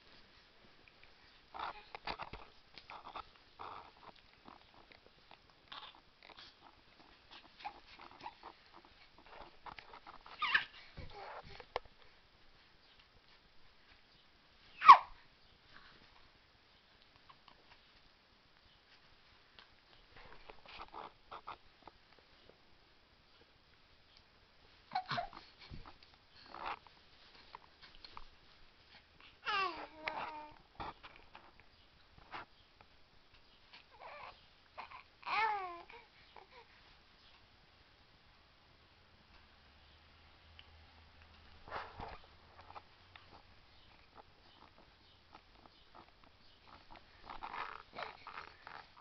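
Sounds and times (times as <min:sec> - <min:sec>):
baby cooing and grunting: 0:01.5 - 0:04.7, 0:05.7 - 0:06.7, 0:07.3 - 0:11.6, 0:24.9 - 0:25.9, 0:29.4 - 0:30.6, 0:33.9 - 0:36.7, 0:46.7 - 0:49.0
baby squealing: 0:10.3 - 0:11.4, 0:14.8 - 0:15.2.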